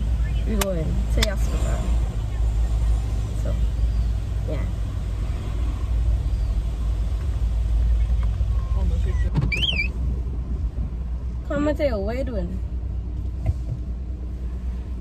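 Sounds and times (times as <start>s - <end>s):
car cabin rumble: 0.0s - 15.0s.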